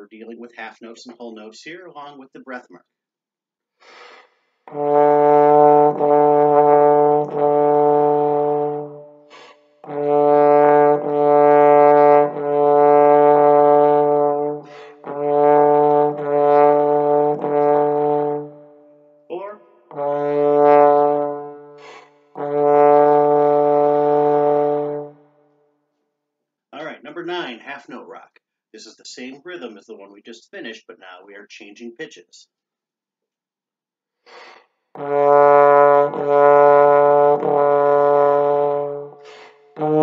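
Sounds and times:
trombone playing low note: 0:04.7 - 0:25.2, 0:35.0 - 0:39.2, 0:39.8 - 0:40.0.

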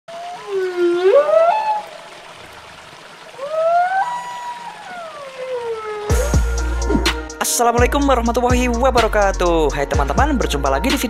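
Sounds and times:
humpback whale song: 0:00.1 - 0:02.4, 0:03.3 - 0:07.3.

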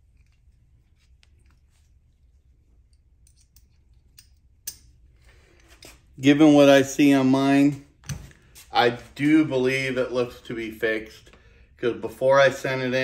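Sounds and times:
metal gun parts clicking: 0:02.9 - 0:05.0.

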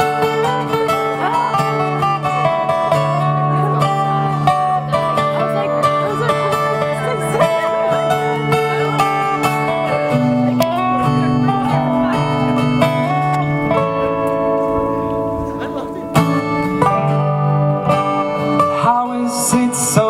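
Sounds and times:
acoustic guitars strumming: 0:00.0 - 0:20.0.

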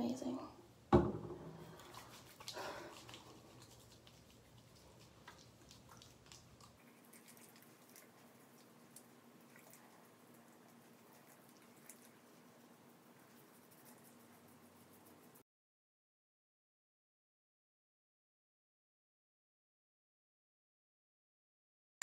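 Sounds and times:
hands rubbing cleanser rustle: 0:01.6 - 0:15.4
faint wet clicks: 0:01.7 - 0:15.4.

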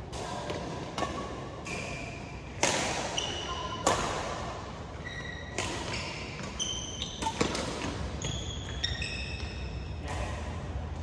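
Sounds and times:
rackets striking shuttlecock: 0:00.1 - 0:04.6, 0:05.5 - 0:08.8
shoes squeaking on court floor: 0:01.0 - 0:04.1, 0:04.9 - 0:10.0.

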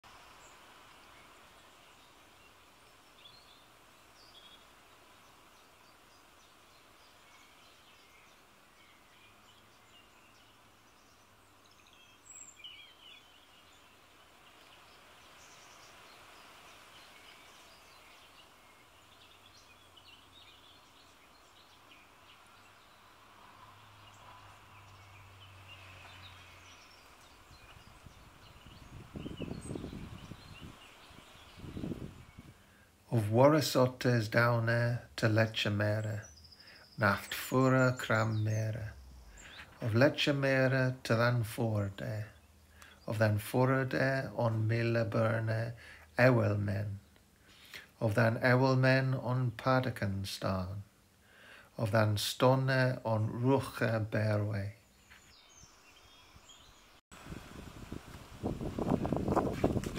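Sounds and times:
birds chirping: 0:00.0 - 0:59.9
wind rumbling on microphone: 0:25.7 - 0:32.6, 0:57.2 - 0:59.9.

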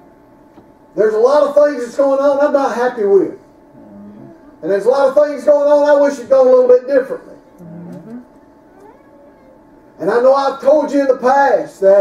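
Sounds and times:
man speaking: 0:01.0 - 0:07.4, 0:10.0 - 0:12.0
faint gliding vocal sounds: 0:03.7 - 0:04.6.

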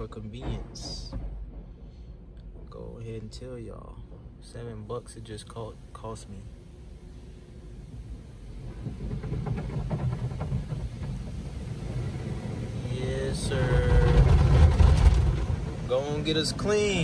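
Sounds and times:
car wash spraying water: 0:04.8 - 0:17.0.

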